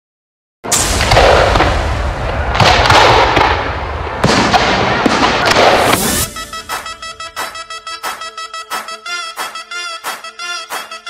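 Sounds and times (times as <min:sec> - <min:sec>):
fireworks crackling: 0:00.7 - 0:08.3
fireworks sharp bangs: 0:00.7 - 0:11.0.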